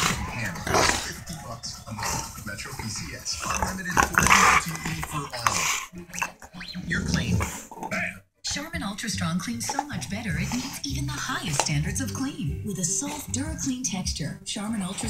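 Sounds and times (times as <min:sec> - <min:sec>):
dog growling: 0:00.0 - 0:08.2, 0:09.5 - 0:13.9, 0:14.7 - 0:15.0.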